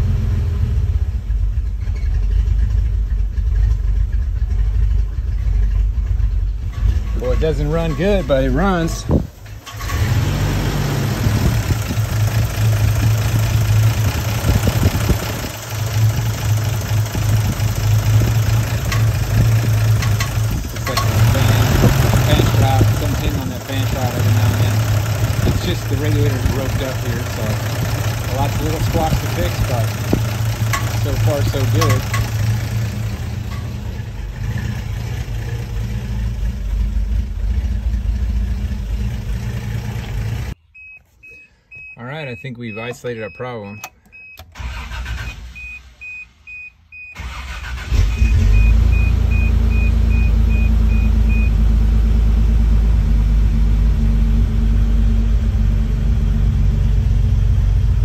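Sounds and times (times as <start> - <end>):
car engine idling roughly: 1.2 - 10.1, 11.2 - 40.6.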